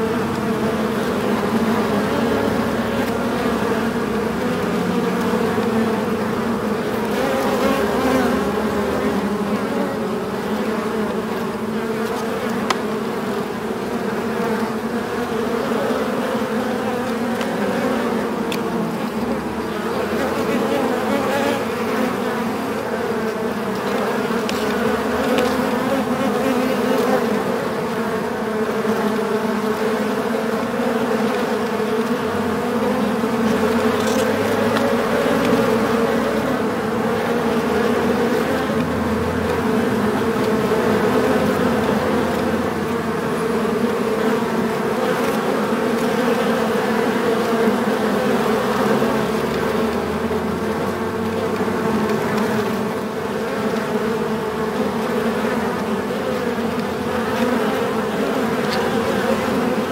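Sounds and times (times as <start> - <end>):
bees buzzing in a hive: 0.0 - 59.9.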